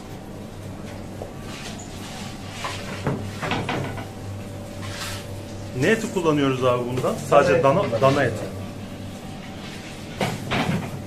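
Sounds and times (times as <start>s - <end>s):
steady low hum: 0.0s - 11.0s
kitchen knocks and scrapes: 1.5s - 4.1s, 9.7s - 11.0s.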